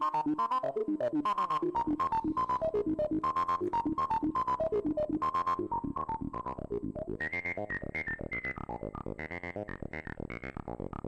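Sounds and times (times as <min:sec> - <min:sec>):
sequenced analog synth notes: 0:00.0 - 0:11.0.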